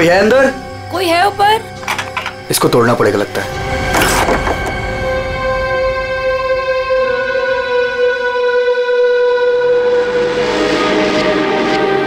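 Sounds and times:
droning suspense chord: 0.0 - 12.0.

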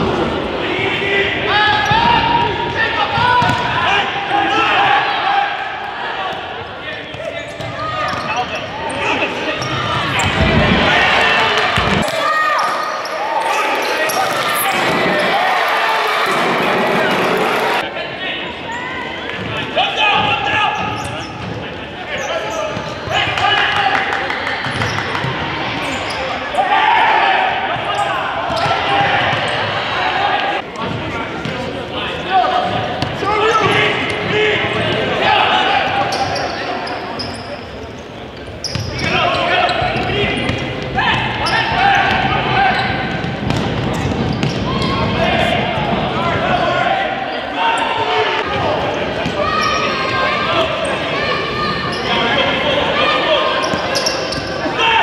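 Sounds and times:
voices calling and chattering: 0.0 - 55.0.

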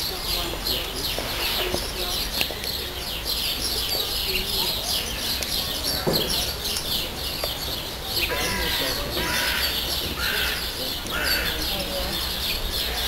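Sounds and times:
harsh bird calls: 0.0 - 13.0
small birds chirping: 0.0 - 13.0.

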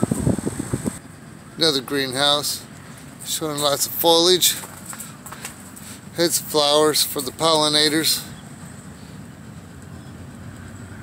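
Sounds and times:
steady low rumble: 0.0 - 10.6.

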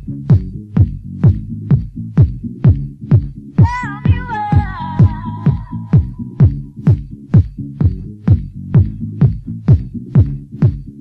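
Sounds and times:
bass line: 0.0 - 11.0
house music kick drum: 0.0 - 11.0.

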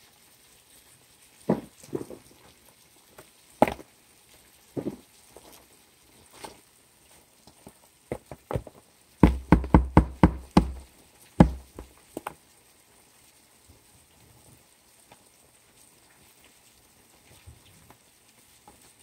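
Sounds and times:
knocks on a plastic tub: 8.1 - 10.8, 11.4 - 11.9.

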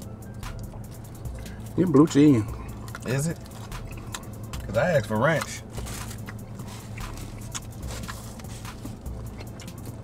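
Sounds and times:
low car cabin hum: 0.0 - 10.0.

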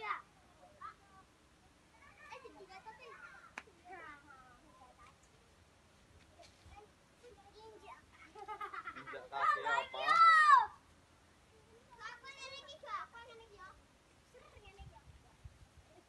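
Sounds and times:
children calling and chattering: 0.0 - 16.0
child high-pitched shout: 9.4 - 10.8.

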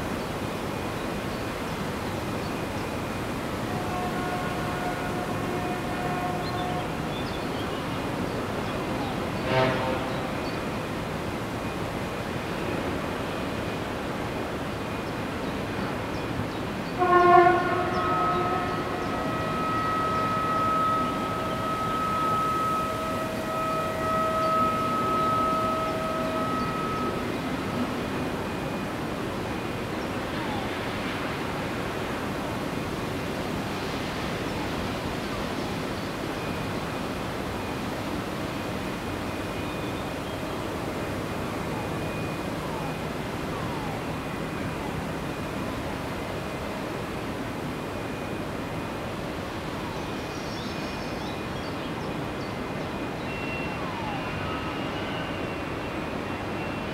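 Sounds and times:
loud horn blast: 3.6 - 8.2, 8.8 - 10.8, 16.9 - 29.0
high whining tones: 17.3 - 30.7.

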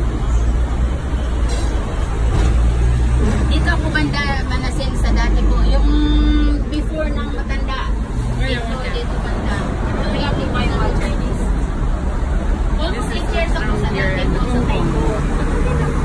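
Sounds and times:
passengers talking: 0.0 - 16.0
tram rumbling: 0.0 - 16.0.

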